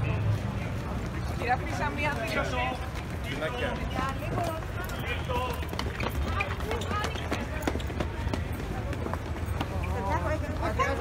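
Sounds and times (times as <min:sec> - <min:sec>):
hurried footsteps on paving: 0:00.0 - 0:11.0.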